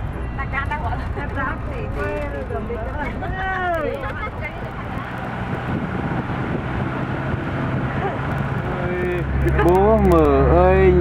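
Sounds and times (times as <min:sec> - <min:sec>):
vehicle engine and tyre rumble: 0:00.0 - 0:11.0.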